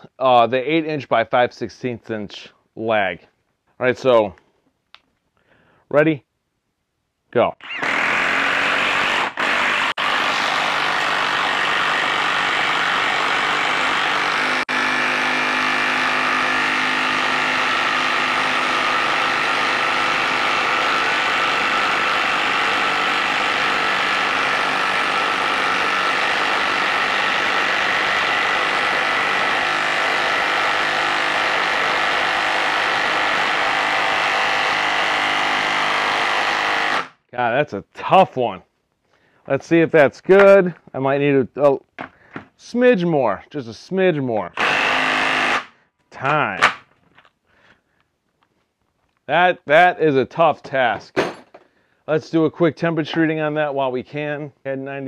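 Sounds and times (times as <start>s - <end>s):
impact wrench hammering: 7.7s - 37.2s, 44.6s - 45.7s, 46.6s - 46.9s.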